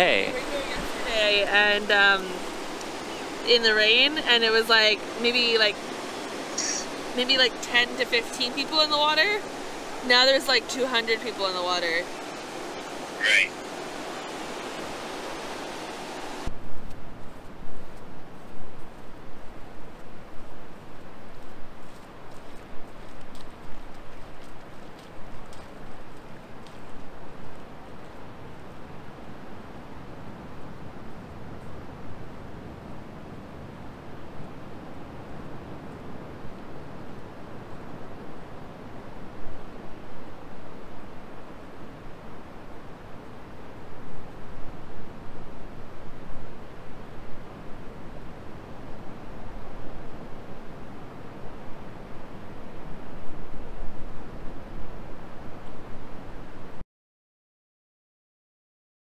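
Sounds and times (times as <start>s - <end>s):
distant surf: 0.0s - 17.4s
wind blowing on microphone: 0.0s - 56.8s.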